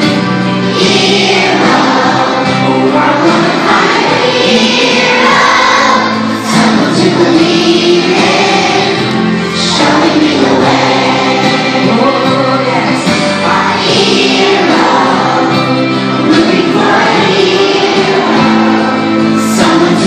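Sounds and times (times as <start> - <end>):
children's choir singing: 0.0 - 20.0.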